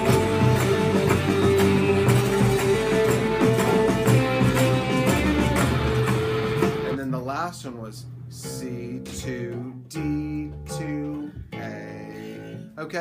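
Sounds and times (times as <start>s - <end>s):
electric bass notes: 0.0s - 7.1s
recorded music: 0.0s - 13.0s.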